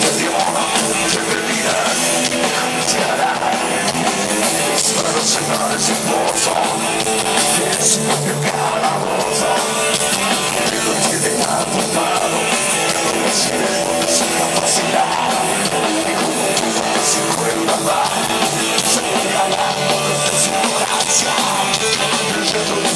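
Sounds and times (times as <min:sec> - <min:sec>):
live rock band playing: 0:00.0 - 0:22.9.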